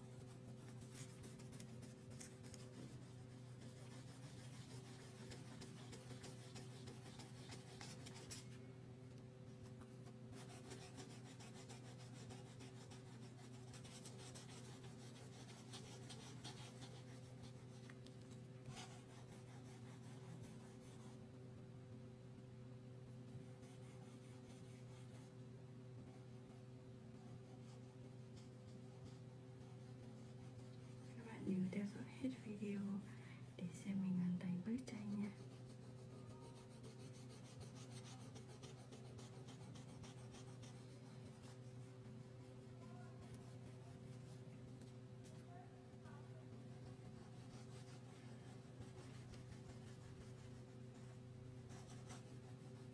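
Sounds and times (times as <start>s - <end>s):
steady low hum: 0.0s - 52.9s
crayon scratching on paper: 0.1s - 8.5s, 10.0s - 21.1s, 34.8s - 52.9s.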